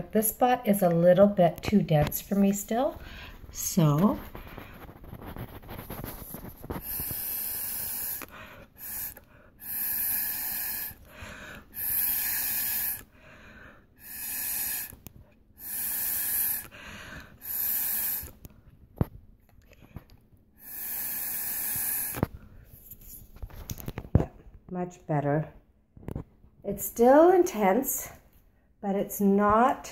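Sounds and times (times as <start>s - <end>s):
blowing through a straw: 2.4s - 13.2s, 14.0s - 18.4s, 20.6s - 22.3s.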